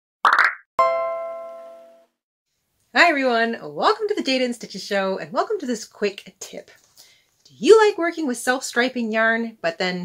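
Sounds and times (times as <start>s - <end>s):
ringing chime note: 0.8s - 2.1s.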